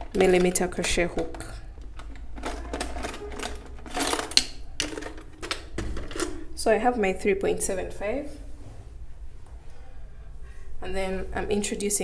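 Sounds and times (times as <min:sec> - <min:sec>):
small hard items rattling: 0:00.0 - 0:06.6.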